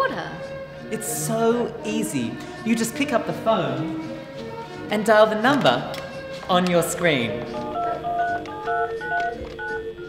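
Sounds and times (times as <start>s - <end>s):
touch-tone telephone beeps: 7.6s - 10.0s.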